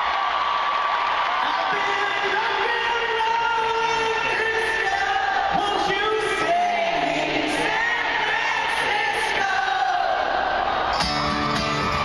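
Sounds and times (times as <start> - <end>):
crowd singing and cheering: 0.0 - 12.0
band playing live: 11.0 - 12.0.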